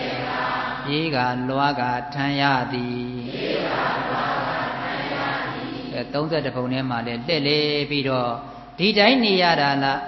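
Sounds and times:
man chanting: 0:00.8 - 0:03.4, 0:05.9 - 0:10.0.

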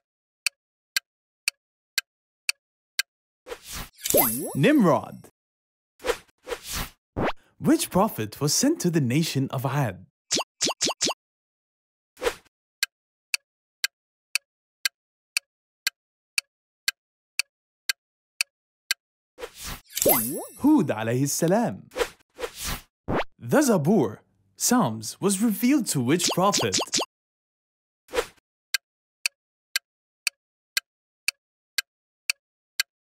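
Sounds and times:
rising pop effect: 0:10.3 - 0:11.2, 0:20.0 - 0:20.8, 0:26.2 - 0:27.1
countdown timer tick: 0:26.2 - 0:27.1.

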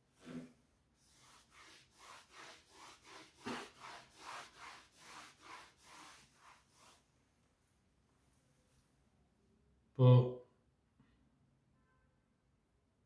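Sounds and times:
eraser rubbing chalkboard: 0:00.2 - 0:07.1.

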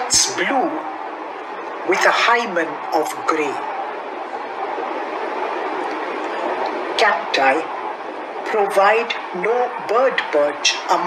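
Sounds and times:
steady rushing noise: 0:00.0 - 0:11.0.

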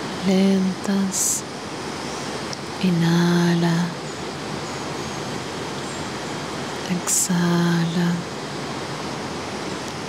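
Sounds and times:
river rushing: 0:00.0 - 0:10.0.

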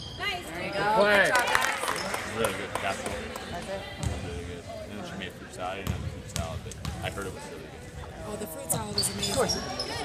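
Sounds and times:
spectators' voices: 0:00.2 - 0:10.0.

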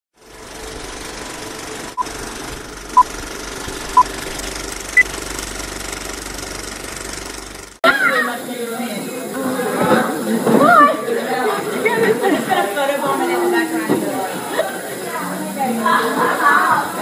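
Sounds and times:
film projector rattle: 0:00.2 - 0:07.8.

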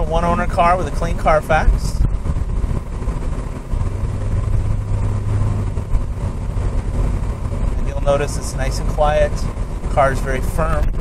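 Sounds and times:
car engine humming: 0:00.0 - 0:11.0
steady low drone: 0:00.0 - 0:11.0
tyre and road noise: 0:00.0 - 0:11.0.

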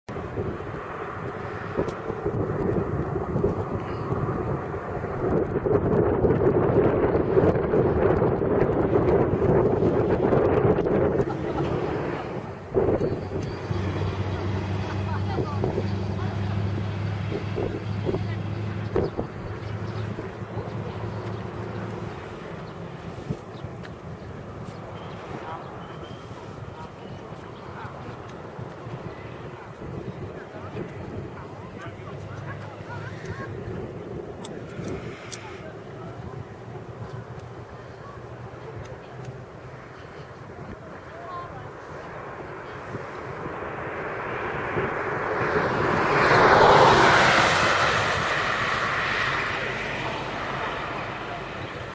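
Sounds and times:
low motor hum: 0:00.1 - 0:35.2
low outdoor rumble: 0:00.1 - 0:51.9
wind buffeting microphone: 0:00.1 - 0:51.9
faint voices: 0:07.1 - 0:51.9.

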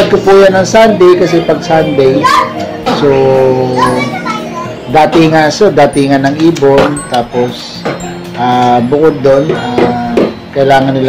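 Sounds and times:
man speaking: 0:00.0 - 0:02.3, 0:02.9 - 0:04.2, 0:04.9 - 0:07.8, 0:08.4 - 0:11.0.

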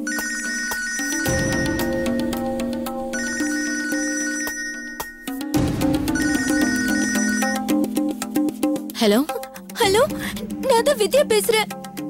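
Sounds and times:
phone musical ringtone: 0:00.0 - 0:07.8.

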